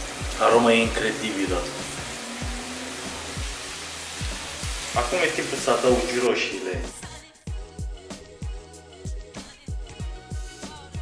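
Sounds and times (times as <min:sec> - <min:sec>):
food sizzling in oil: 0:00.0 - 0:07.0
background music with steady beat: 0:00.0 - 0:11.0.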